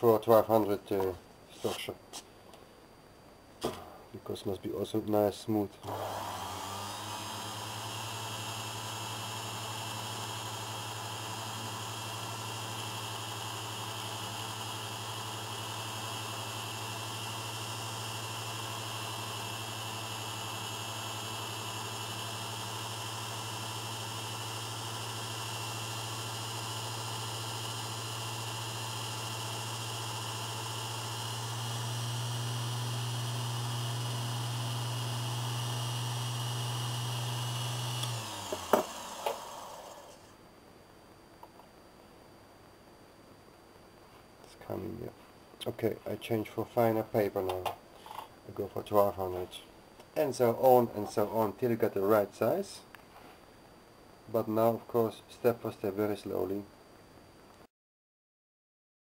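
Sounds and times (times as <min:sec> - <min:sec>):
lathe humming: 0:05.8 - 0:40.3.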